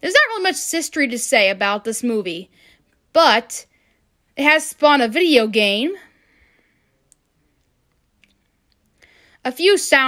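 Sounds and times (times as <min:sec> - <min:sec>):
faint clicks: 0:07.0 - 0:09.1.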